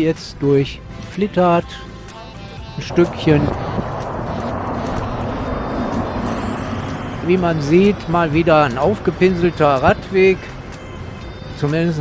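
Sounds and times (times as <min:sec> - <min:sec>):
bus engine and tyres rumbling: 0:01.8 - 0:12.0.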